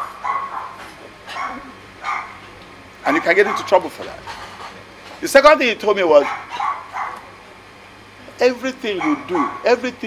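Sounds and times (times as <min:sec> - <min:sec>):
dog barking: 0:00.0 - 0:02.4, 0:03.1 - 0:03.8, 0:06.2 - 0:07.3, 0:09.0 - 0:09.8.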